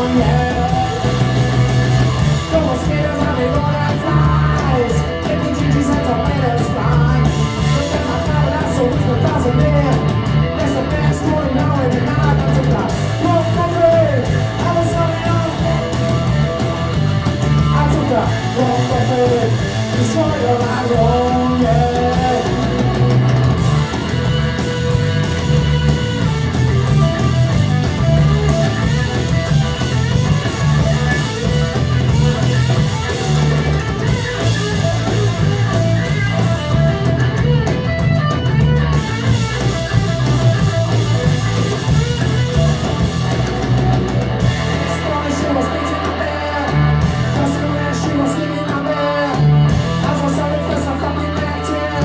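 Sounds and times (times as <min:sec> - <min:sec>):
punk band playing live: 0:00.0 - 0:52.0.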